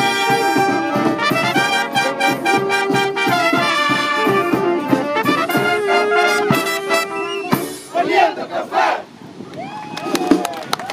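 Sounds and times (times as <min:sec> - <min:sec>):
brass band chord: 0:00.0 - 0:07.9
many voices shouting in unison: 0:07.9 - 0:09.1.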